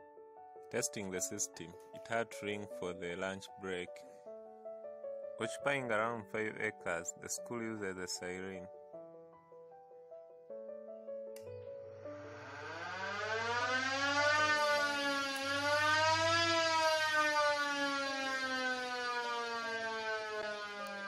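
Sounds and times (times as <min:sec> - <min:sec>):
siren wailing: 0:12.2 - 0:21.0
bell controller click: 0:20.8 - 0:21.0.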